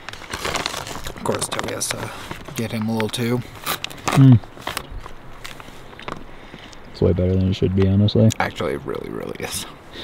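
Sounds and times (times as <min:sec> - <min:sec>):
plastic bag rustling: 0:00.0 - 0:06.3
chewing: 0:00.7 - 0:06.9.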